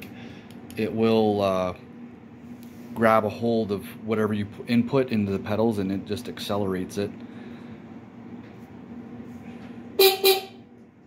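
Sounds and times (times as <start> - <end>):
electric bike horn toots: 10.0 - 10.7.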